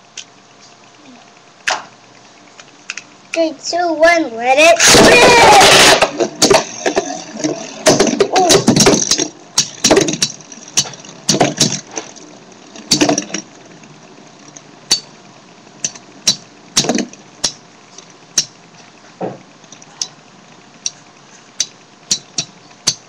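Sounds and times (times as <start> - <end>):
spinning tops clacking: 4.8 - 15.2, 15.8 - 18.6, 20.8 - 23.0.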